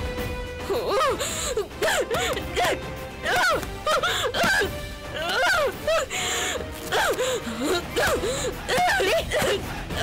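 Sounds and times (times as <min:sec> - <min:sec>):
background music: 0:00.0 - 0:10.0
woman wailing: 0:00.7 - 0:06.1, 0:06.9 - 0:10.0.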